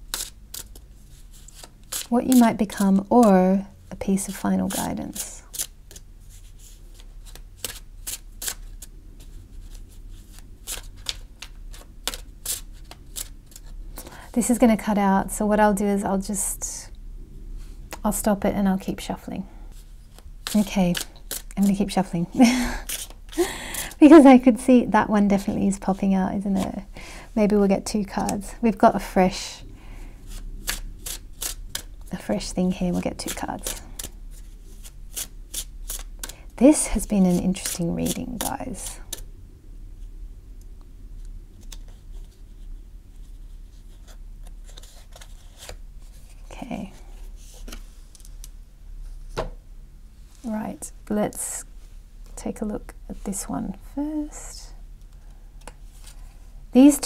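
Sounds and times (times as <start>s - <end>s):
cards being shuffled: 4.7s - 13.8s, 20.1s - 24.1s, 37.4s - 39.2s, 43.3s - 46.4s.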